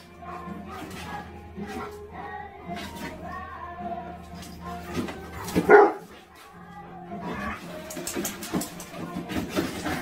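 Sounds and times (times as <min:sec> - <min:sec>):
background music: 0:00.0 - 0:10.0
dog barking: 0:05.5 - 0:06.1.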